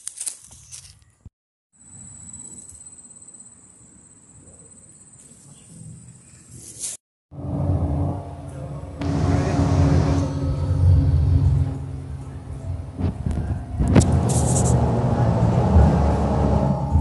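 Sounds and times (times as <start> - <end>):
bus engine and road rumble: 7.4 - 17.0.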